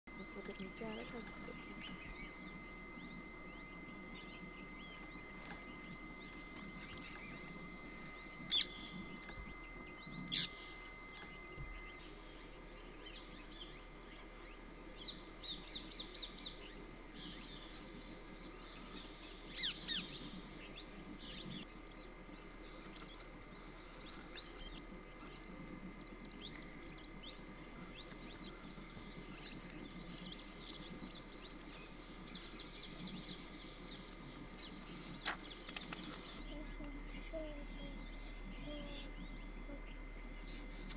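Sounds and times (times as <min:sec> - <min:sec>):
birds chirping: 0:00.1 - 0:40.9
low background murmur: 0:00.1 - 0:40.9.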